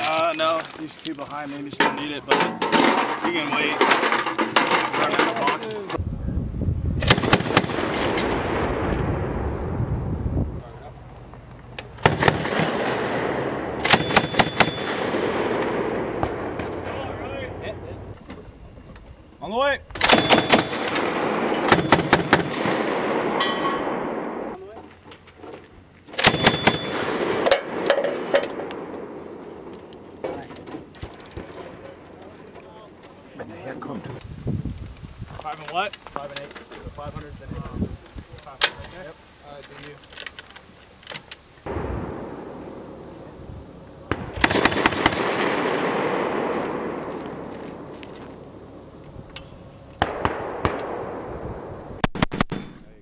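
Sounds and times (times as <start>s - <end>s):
rolling echo: 7.0s - 19.3s, 19.9s - 24.7s, 26.2s - 33.0s, 41.7s - 53.0s
grenade launcher bursts: 12.0s - 17.1s, 20.0s - 24.5s.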